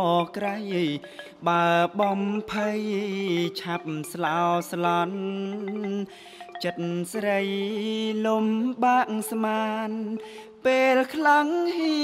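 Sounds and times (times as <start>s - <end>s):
xylophone: 0.0s - 12.0s.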